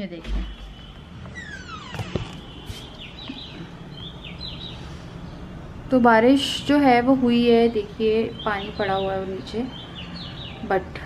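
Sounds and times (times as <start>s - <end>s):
birds chirping: 0.0s - 11.0s
birds whistling: 0.3s - 5.5s, 7.5s - 10.8s.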